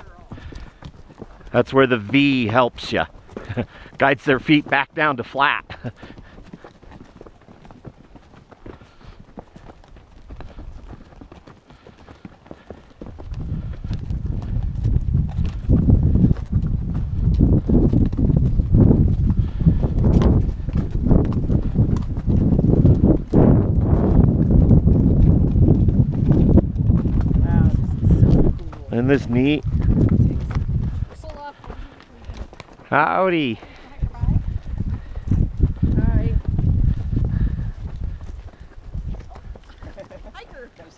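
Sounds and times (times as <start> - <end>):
hooves clip-clopping on rock: 0.0 - 40.9.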